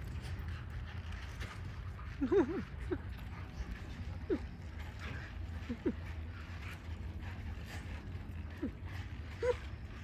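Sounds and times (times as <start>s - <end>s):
low rumble: 0.0s - 10.0s
husky yipping: 8.4s - 10.0s.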